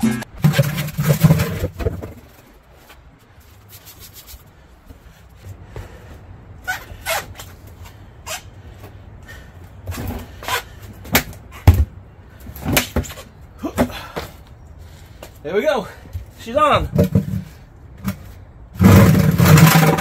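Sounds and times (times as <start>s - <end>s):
tire thumping onto wheel rim: 0.0s - 2.5s, 9.8s - 14.3s, 16.8s - 20.0s.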